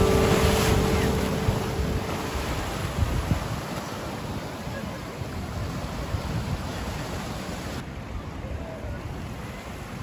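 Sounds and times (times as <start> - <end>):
ocean surf breaking on shore: 0.0 - 10.0.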